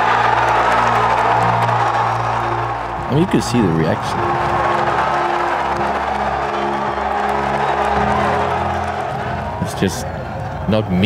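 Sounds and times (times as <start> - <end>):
large crowd cheering: 0.0 - 11.0
sustained background music chords: 0.0 - 11.0
man talking: 3.1 - 4.2, 9.6 - 11.0.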